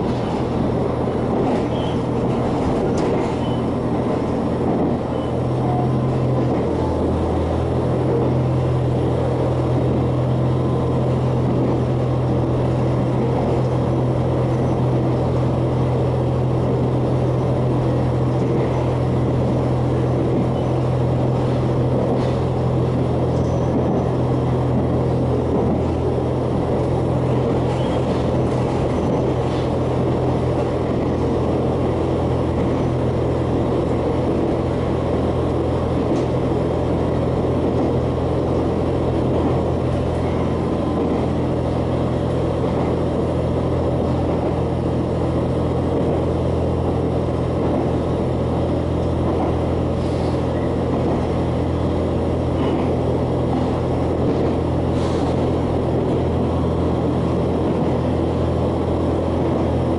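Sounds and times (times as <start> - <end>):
diesel engine drone: 0.0 - 59.9
train wheels rumbling on rail: 0.0 - 59.9.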